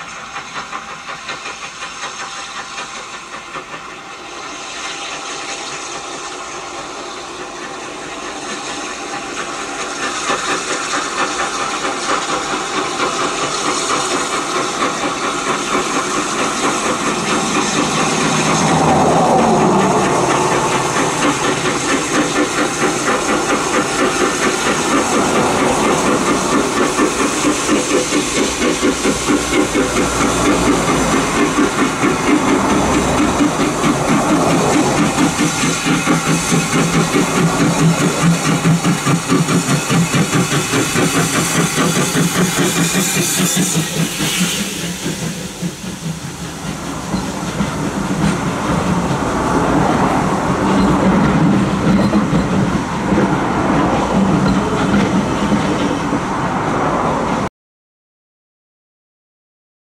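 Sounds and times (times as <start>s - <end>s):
train wheels clicking over rail joints: 0.0s - 57.4s
rush of exhaust and steam: 0.0s - 57.5s
steam locomotive exhaust beating: 0.0s - 57.5s.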